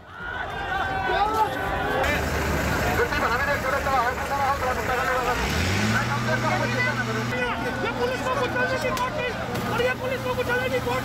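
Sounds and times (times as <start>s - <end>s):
crowd shouting: 0.0s - 11.0s
vehicle engine revving: 2.0s - 8.0s.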